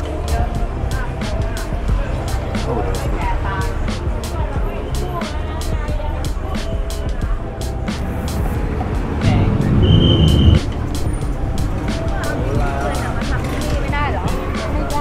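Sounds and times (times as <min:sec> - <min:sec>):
background music with beat: 0:00.0 - 0:15.0
passers-by talking: 0:00.0 - 0:15.0
traffic: 0:00.0 - 0:15.0
vehicle passing close: 0:07.8 - 0:13.8.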